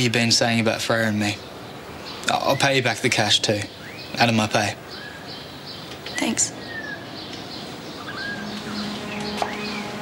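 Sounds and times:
birds chirping and whistling: 1.4 - 10.0
low steady note: 8.0 - 10.0.

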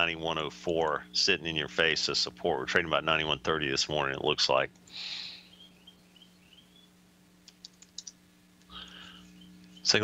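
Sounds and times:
faint electrical hum: 0.0 - 10.0
keyboard keystrokes: 7.4 - 8.2.

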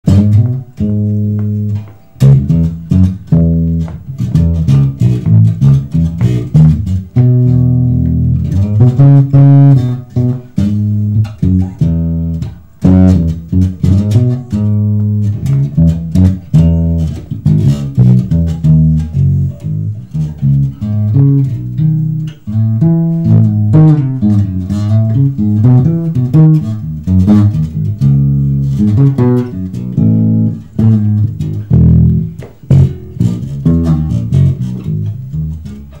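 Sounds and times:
electric bass guitar plucked: 0.0 - 36.0.

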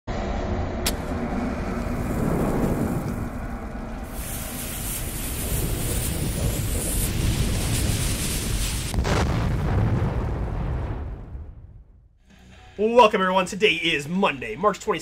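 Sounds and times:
low rumble: 0.1 - 12.8
hiss of burning fire: 0.9 - 10.0.

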